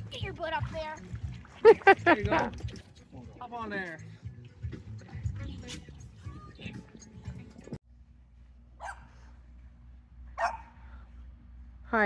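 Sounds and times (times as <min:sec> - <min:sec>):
steady low hum: 0:07.1 - 0:12.0
dog barking: 0:08.8 - 0:09.2, 0:10.4 - 0:10.8.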